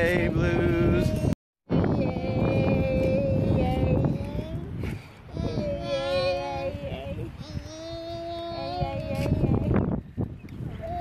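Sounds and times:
toddler singing: 0:00.8 - 0:09.9, 0:10.8 - 0:11.0.

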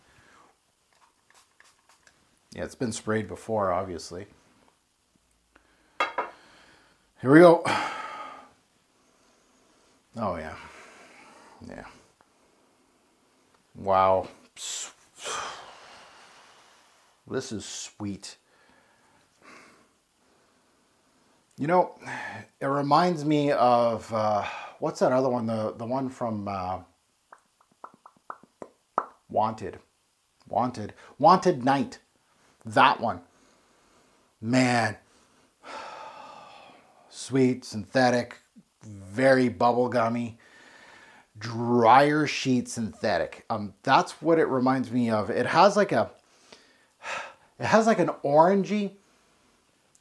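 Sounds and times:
soft mouth clicks: 0:27.3 - 0:29.2.

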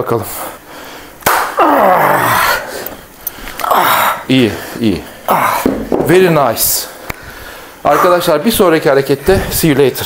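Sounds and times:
man groaning with effort: 0:01.5 - 0:02.8, 0:03.6 - 0:04.5, 0:05.3 - 0:05.8.

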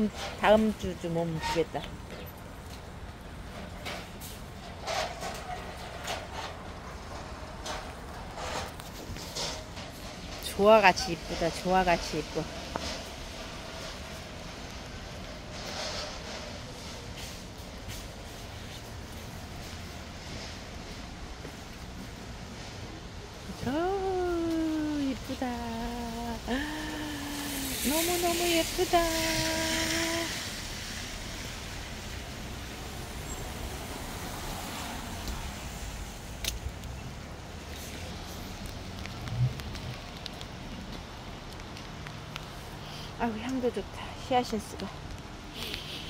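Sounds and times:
woman singing long notes: 0:23.7 - 0:30.4.

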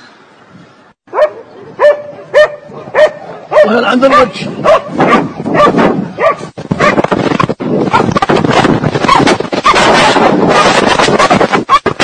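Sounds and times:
dog barking and yelping: 0:01.1 - 0:07.1, 0:07.8 - 0:08.4, 0:09.0 - 0:12.0.

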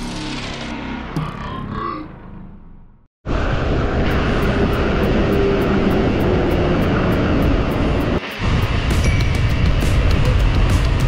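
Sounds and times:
highway traffic: 0:00.7 - 0:11.0
rushing wind noise: 0:03.3 - 0:11.0.

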